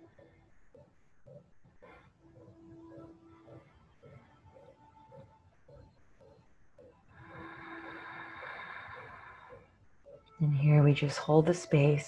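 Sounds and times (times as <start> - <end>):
long breath through the throat: 7.2 - 9.7.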